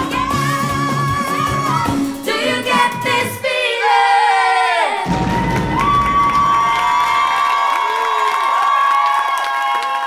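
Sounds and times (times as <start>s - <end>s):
crowd cheering and shouting: 4.6s - 10.0s.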